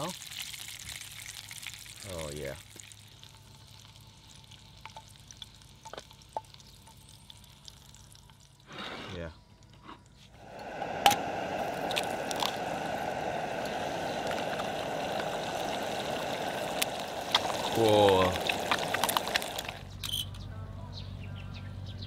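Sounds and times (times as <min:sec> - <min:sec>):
egg sizzling in frying pan: 0:00.0 - 0:08.7, 0:09.6 - 0:20.0.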